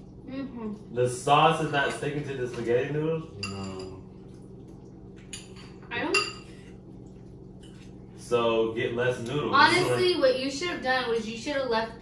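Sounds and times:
forks clinking on plates: 3.4 - 4.0, 5.2 - 6.6.

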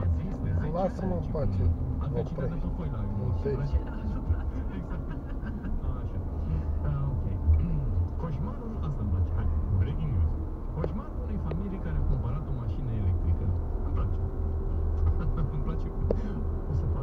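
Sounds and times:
car driving rumble: 0.0 - 17.0.

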